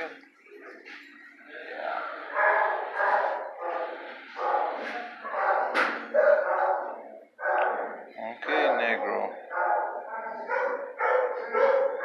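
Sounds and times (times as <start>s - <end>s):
dogs barking: 2.2s - 12.0s.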